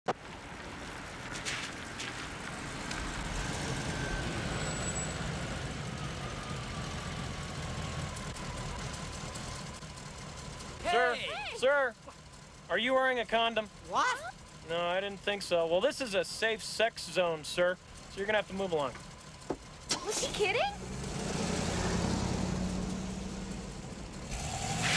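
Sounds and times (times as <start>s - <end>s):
car engine and tyre noise: 0.1s - 24.9s.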